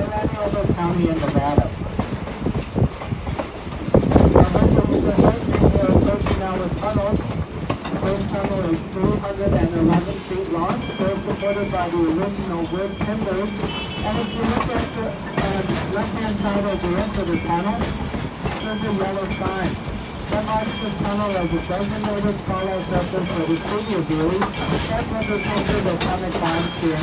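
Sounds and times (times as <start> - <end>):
people talking: 0.0 - 1.8, 4.2 - 7.3, 7.9 - 18.0, 18.6 - 27.0
train wheels clacking on rails: 0.0 - 27.0.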